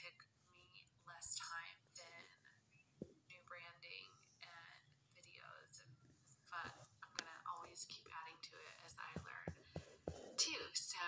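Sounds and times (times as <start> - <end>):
woman whispering: 6.5 - 9.6.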